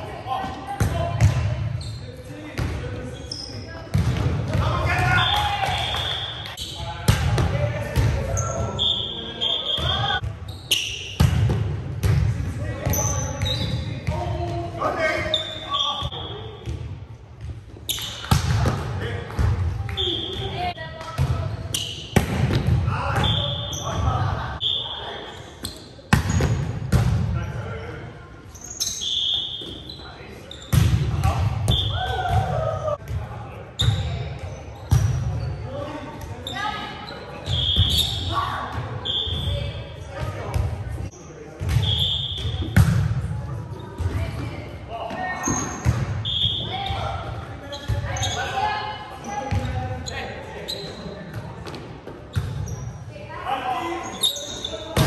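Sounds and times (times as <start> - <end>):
sneakers squeaking on hardwood: 8.3 - 11.5, 12.8 - 14.2, 33.7 - 35.7, 36.3 - 39.7, 45.2 - 51.1, 51.7 - 53.0.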